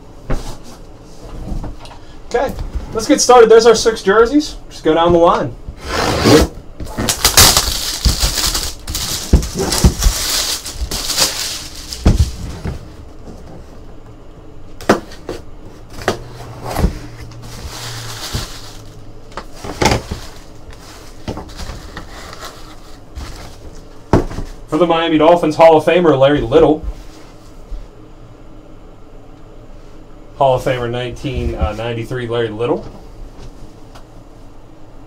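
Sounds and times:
cardboard boxes rustling: 6.4 - 13.9, 14.9 - 24.6.

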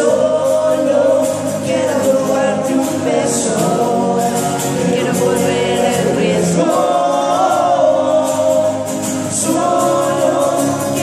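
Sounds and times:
male voices singing in harmony: 0.0 - 11.0
strummed acoustic guitars: 0.0 - 11.0.

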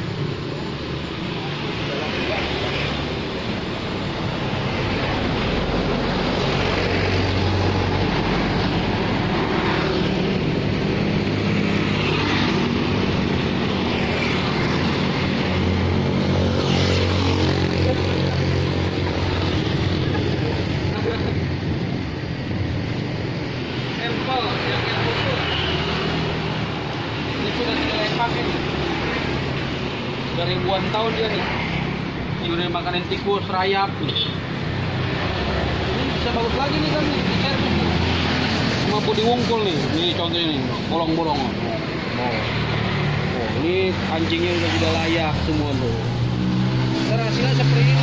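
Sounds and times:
motorbike engines passing: 0.0 - 48.0
steady engine hum: 0.0 - 48.0.

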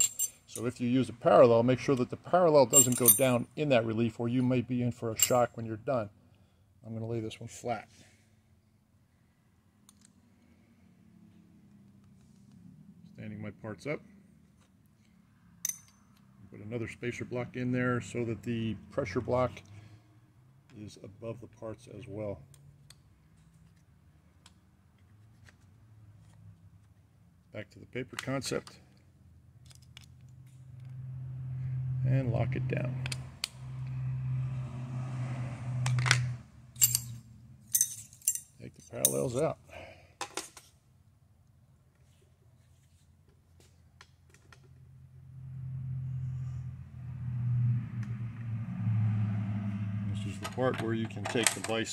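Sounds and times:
metallic clink with ring: 0.0 - 0.8, 2.7 - 3.4, 15.6 - 16.2, 36.8 - 39.2
light metal clinks: 2.7 - 3.4.

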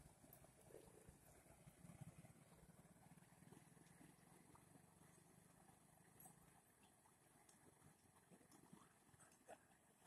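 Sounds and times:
low fluttering hum: 0.0 - 10.0.

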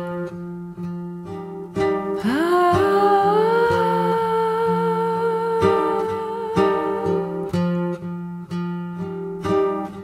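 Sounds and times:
plucked acoustic guitar: 0.0 - 10.0.

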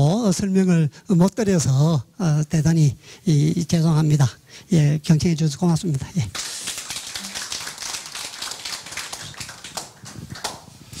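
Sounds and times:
audience applauding: 6.4 - 10.7.

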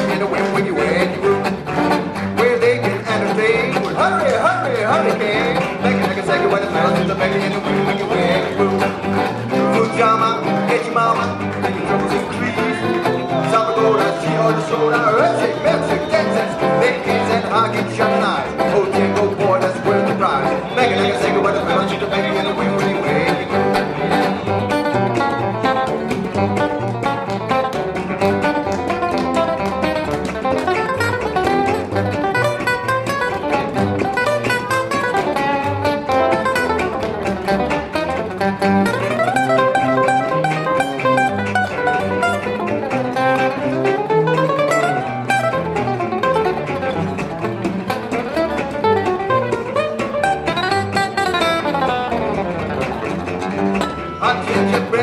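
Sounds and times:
fast acoustic guitar runs: 0.0 - 55.0
plucked double bass: 0.0 - 55.0
strummed rhythm guitar: 0.0 - 55.0.

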